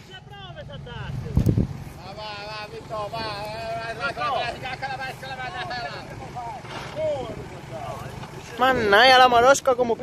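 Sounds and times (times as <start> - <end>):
off-road engine running low: 0.0 - 10.0
excited voices calling out: 2.0 - 10.0.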